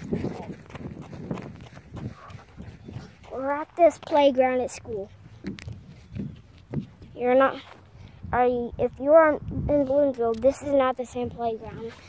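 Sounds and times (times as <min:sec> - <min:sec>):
soft footsteps: 0:05.1 - 0:07.9.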